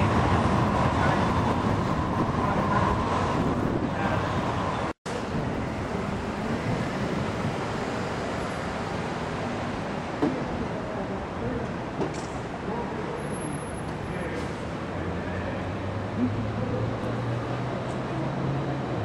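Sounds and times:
traffic rumble and hiss: 0:00.0 - 0:19.0.

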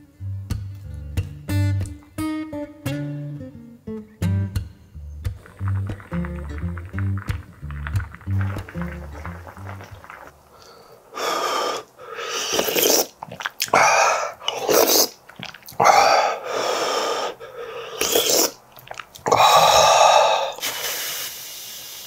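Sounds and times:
person blowing on food: 0:05.4 - 0:15.2, 0:15.8 - 0:18.6
slurping from spoon: 0:05.4 - 0:20.8.

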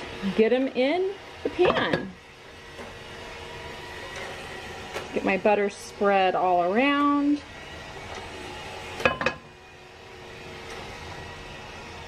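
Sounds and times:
frying pan hissing: 0:00.0 - 0:12.0.

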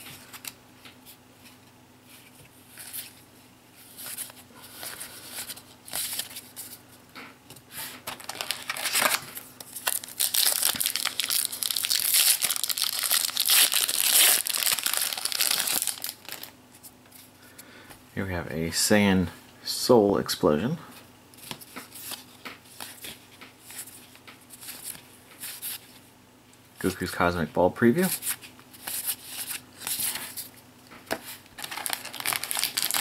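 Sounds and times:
foil wrapper crinkling and tearing: 0:08.0 - 0:16.6, 0:31.5 - 0:33.0.

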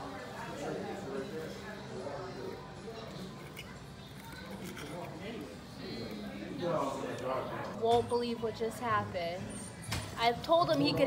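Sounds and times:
indistinct talk: 0:00.0 - 0:11.0.

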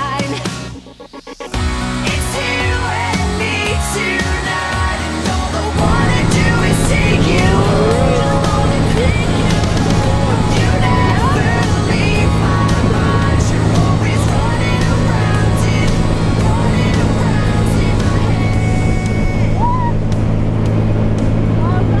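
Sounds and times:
propeller airplane engine drone: 0:04.6 - 0:22.0
people talking: 0:05.8 - 0:20.0, 0:21.6 - 0:22.0.

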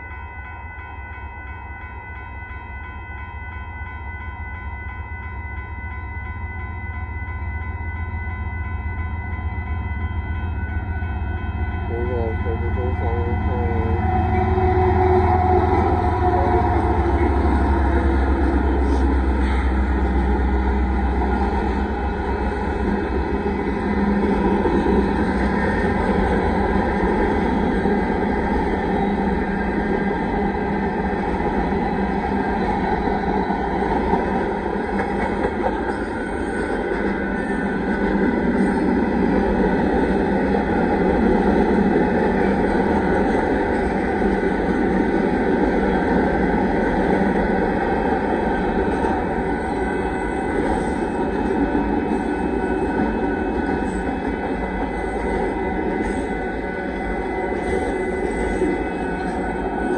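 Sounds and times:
diesel locomotive engines: 0:00.0 - 0:59.9
train wheels rumbling on rail: 0:09.2 - 0:59.9.

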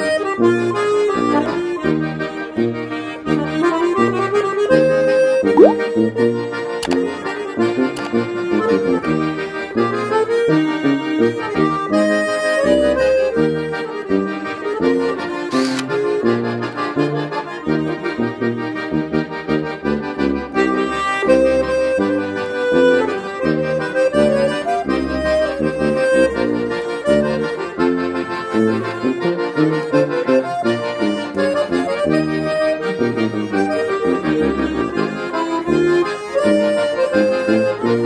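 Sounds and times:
accordions playing a hymn: 0:00.0 - 0:05.4, 0:06.2 - 0:38.0
tuba bass line: 0:05.6 - 0:05.8.

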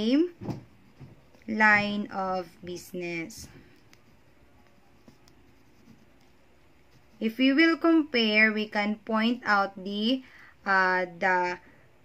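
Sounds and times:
pen scratching on paper: 0:00.0 - 0:07.9.

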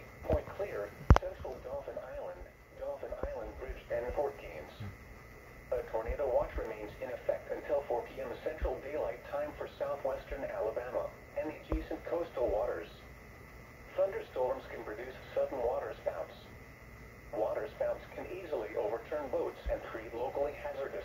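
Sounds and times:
radio voice through small speaker: 0:00.2 - 0:05.0, 0:05.7 - 0:13.1, 0:13.9 - 0:16.5, 0:17.3 - 0:21.0.

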